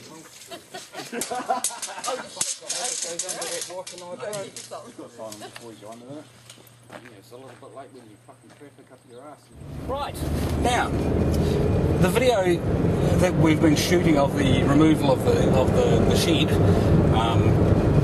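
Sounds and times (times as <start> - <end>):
people talking indistinctly: 1.8 - 17.6
low steady rumble: 9.5 - 18.0.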